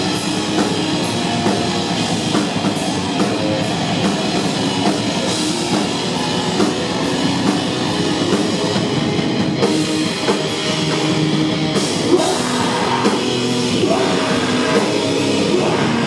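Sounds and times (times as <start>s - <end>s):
bass guitar: 0.0s - 16.0s
distorted electric guitars: 0.0s - 16.0s
drum kit: 0.0s - 16.0s.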